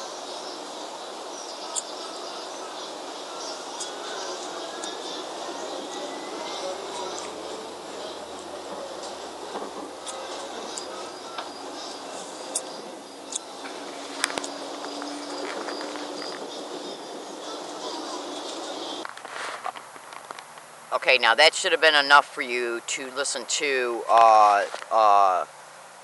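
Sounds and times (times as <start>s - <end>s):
faint voices: 0.0s - 25.5s
hiss of travel noise: 0.0s - 26.0s.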